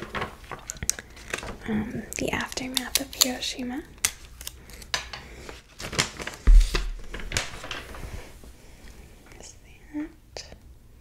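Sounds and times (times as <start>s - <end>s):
paper rustling and crackling: 0.0s - 1.7s, 4.0s - 8.5s
heavy low thump: 6.5s - 7.1s.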